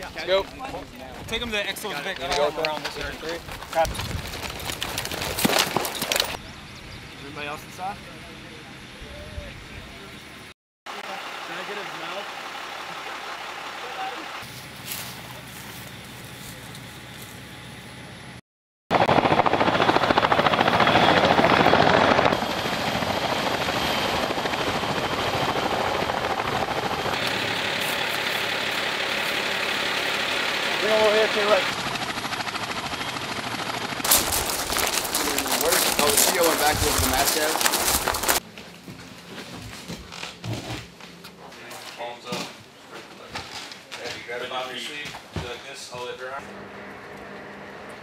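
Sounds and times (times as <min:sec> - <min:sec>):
helicopter rotor and turbine noise: 0:00.0 - 0:38.4, 0:45.7 - 0:48.0.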